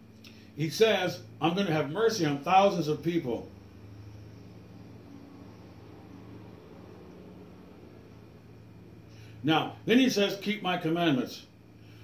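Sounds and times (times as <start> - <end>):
faint hiss: 0.0 - 12.0
low hum: 0.0 - 12.0.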